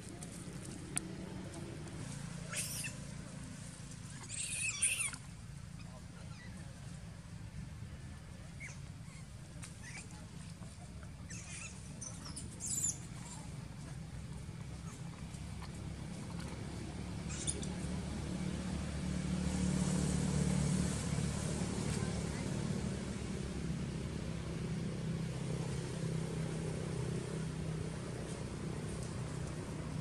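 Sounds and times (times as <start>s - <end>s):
vehicle engine humming: 0.0s - 30.0s
young macaque squealing: 2.5s - 3.0s, 4.1s - 5.3s, 11.3s - 13.0s, 17.3s - 17.7s.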